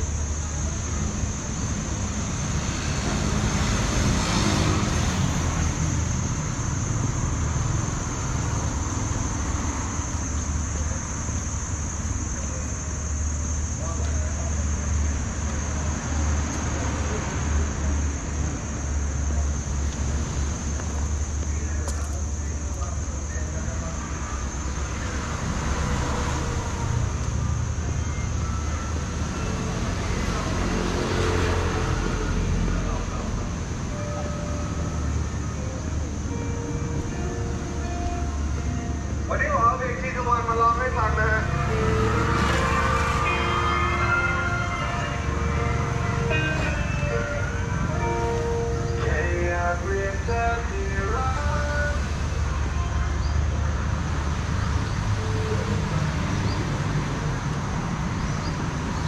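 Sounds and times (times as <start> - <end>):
faint voices: 0.0 - 3.3, 10.4 - 53.2
road traffic rumble: 0.0 - 59.0.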